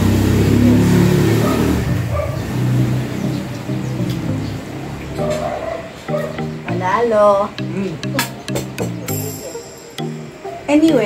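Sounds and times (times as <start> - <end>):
background music: 2.5 - 11.0.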